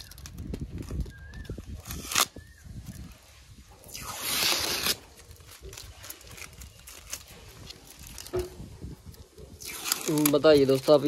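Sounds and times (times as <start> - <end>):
masking tape peeling off rubber: 0.0 - 11.0.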